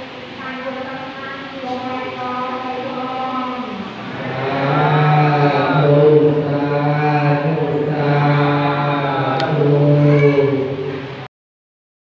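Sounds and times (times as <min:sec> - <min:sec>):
low male voices chanting: 0:04.0 - 0:11.0.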